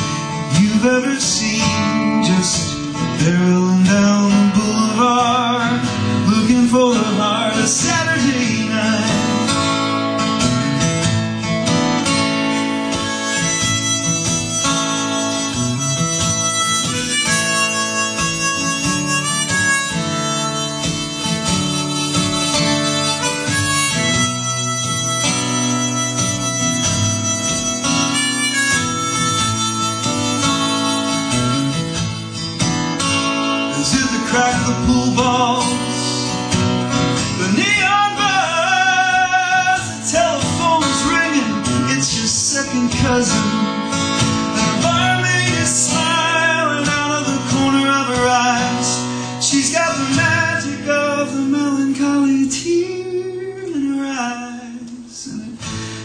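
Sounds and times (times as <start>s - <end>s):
harmonica playing: 0.0s - 51.3s
strummed acoustic guitar: 0.0s - 56.0s.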